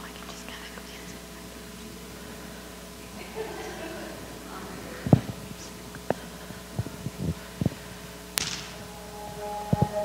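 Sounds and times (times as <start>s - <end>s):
sharp click: 8.4s - 8.7s
faint backing track tones: 8.7s - 10.0s.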